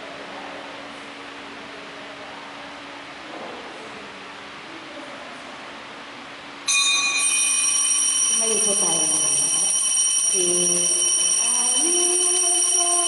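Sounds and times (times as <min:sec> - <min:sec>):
bell ringing: 0:06.7 - 0:13.0.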